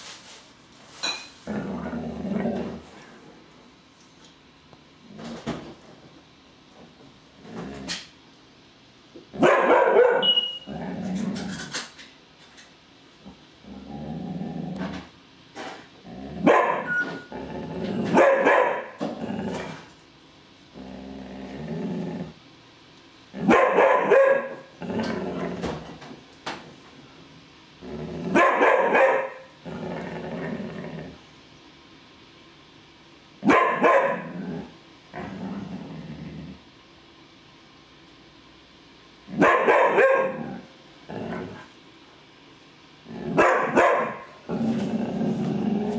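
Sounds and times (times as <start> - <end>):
dog growling low: 1.4 - 3.2, 7.4 - 8.1, 10.7 - 11.8, 13.2 - 15.1, 16.0 - 16.5, 17.3 - 18.2, 19.0 - 19.9, 20.7 - 22.4, 24.8 - 25.9, 27.8 - 28.4, 29.6 - 31.3, 34.2 - 36.7, 40.3 - 41.7, 43.0 - 43.4, 44.4 - 45.9
dog barking loudly: 9.4 - 10.3, 16.4 - 16.9, 18.2 - 19.0, 23.4 - 24.6, 28.4 - 29.5, 33.4 - 34.3, 39.4 - 40.4, 43.4 - 44.3.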